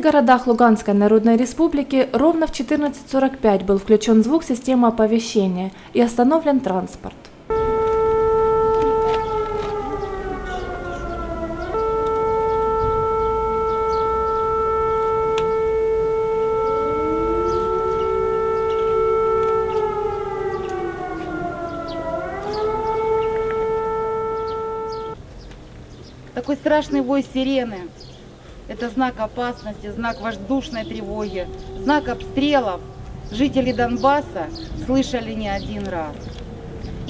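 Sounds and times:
fainter second siren: 7.5s - 25.2s, 30.4s - 37.0s
warning siren wailing: 7.5s - 25.2s, 30.0s - 37.0s.

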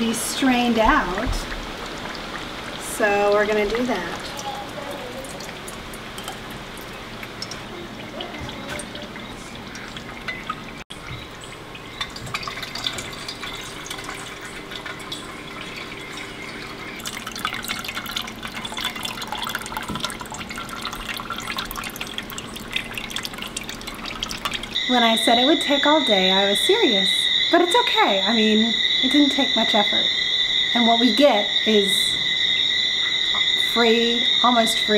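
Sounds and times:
hot fat dripping into a bowl: 0.0s - 34.9s.

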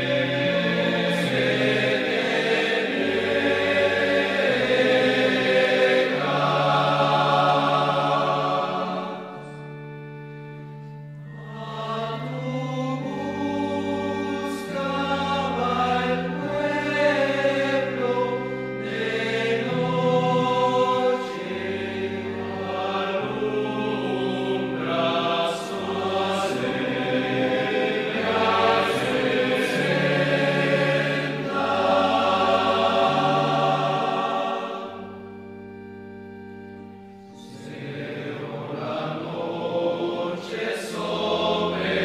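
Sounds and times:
choir singing a hymn: 0.0s - 42.0s
low held accompaniment notes: 0.0s - 42.0s.

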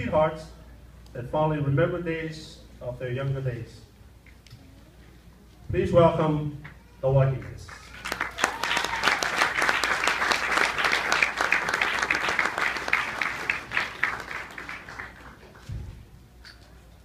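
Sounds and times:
audience applauding: 7.8s - 15.7s.

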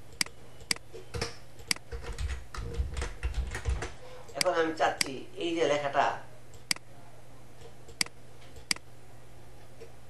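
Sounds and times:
computer keyboard keys clicking: 0.1s - 5.1s.

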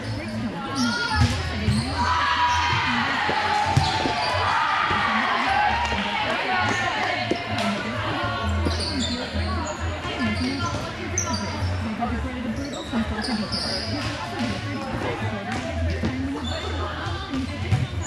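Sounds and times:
players' voices and chatter: 0.0s - 18.0s.

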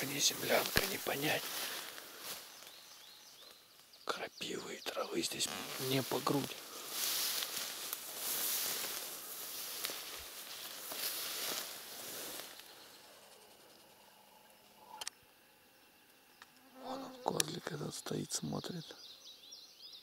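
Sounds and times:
grass swishing against horse: 5.6s - 12.7s.

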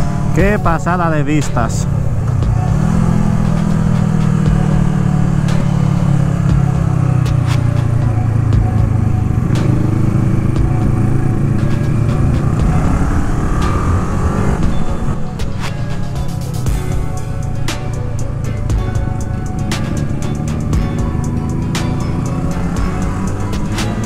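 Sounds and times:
motorcycle engine running: 0.0s - 24.0s.

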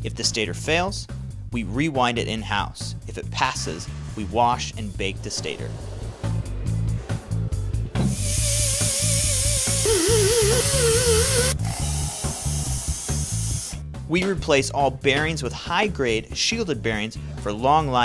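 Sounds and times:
background music with steady beat: 0.0s - 18.0s
pneumatic grinder whining: 8.1s - 13.8s.

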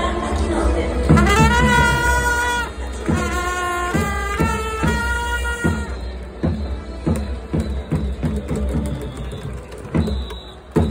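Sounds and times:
stadium crowd noise: 0.0s - 10.9s
drum beating steady rhythm: 1.0s - 10.9s.

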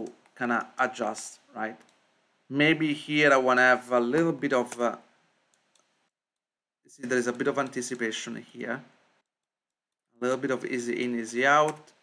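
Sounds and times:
computer mouse clicks: 0.0s - 2.0s, 11.6s - 12.0s.

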